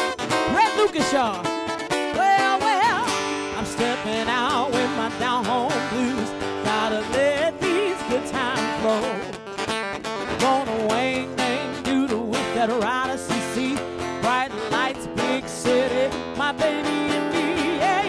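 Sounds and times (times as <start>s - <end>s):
bending guitar notes: 0.0s - 18.0s
woman singing blues: 0.3s - 9.5s, 10.1s - 18.0s.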